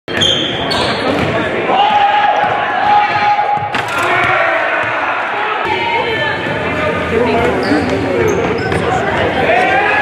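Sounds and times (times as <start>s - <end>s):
echoing crowd noise and voices: 0.1s - 10.0s.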